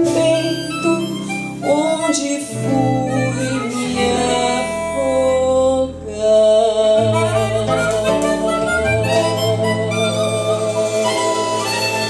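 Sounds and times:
harmonica solo: 0:00.0 - 0:06.1, 0:07.0 - 0:12.0
live band accompaniment: 0:00.0 - 0:12.0.

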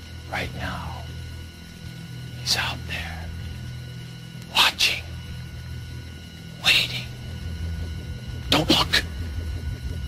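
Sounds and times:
steady low drone: 0:00.0 - 0:10.0.

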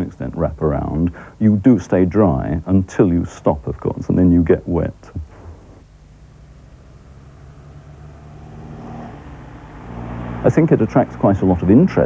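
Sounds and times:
car engine approaching: 0:05.8 - 0:12.0.

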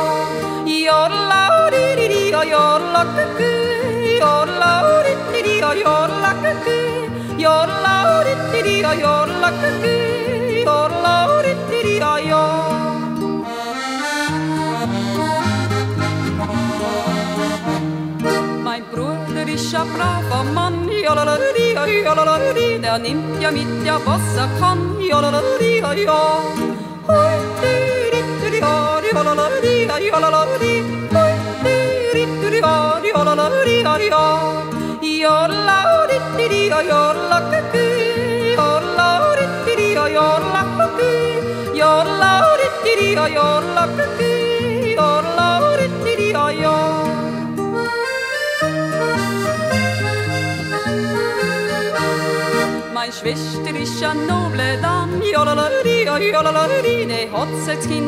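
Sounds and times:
woman yodeling: 0:00.0 - 0:13.0, 0:18.7 - 0:47.2, 0:53.0 - 0:58.0
folk accompaniment chords and bass: 0:00.0 - 0:58.0.

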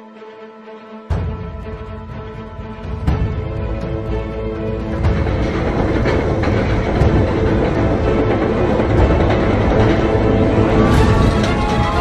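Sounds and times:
roller coaster rumbling on track: 0:01.3 - 0:12.0.

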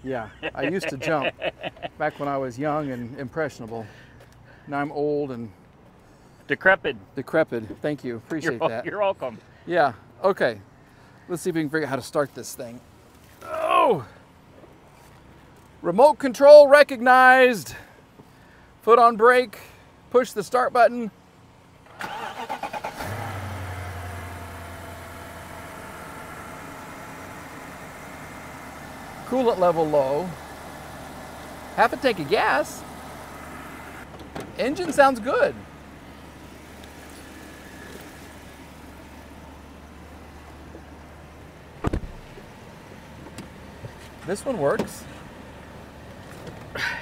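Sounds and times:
car engine idling: 0:21.2 - 0:47.0
starter motor cranking: 0:21.9 - 0:23.4.

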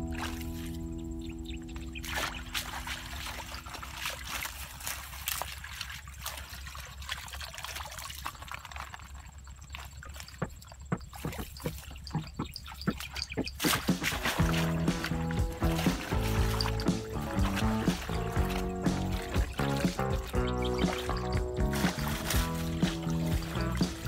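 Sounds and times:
water dripping: 0:00.0 - 0:24.0
water splashing from basket: 0:00.0 - 0:24.0.

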